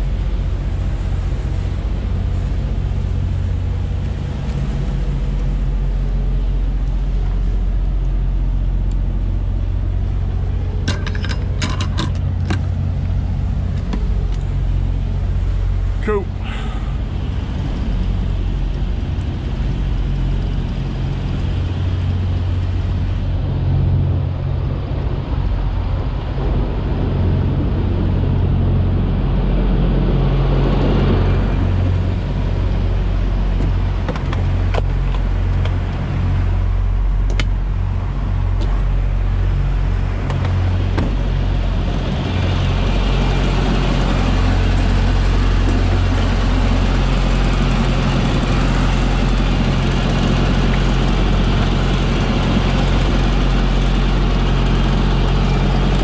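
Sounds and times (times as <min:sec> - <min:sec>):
diesel engine idling: 0:00.0 - 0:56.0
sharp clicks and knocks: 0:10.8 - 0:12.8, 0:33.6 - 0:35.8, 0:37.3 - 0:37.6, 0:40.2 - 0:41.2.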